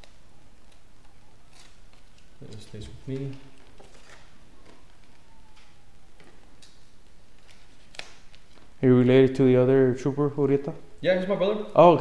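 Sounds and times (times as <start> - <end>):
room noise: 0.0 - 12.0.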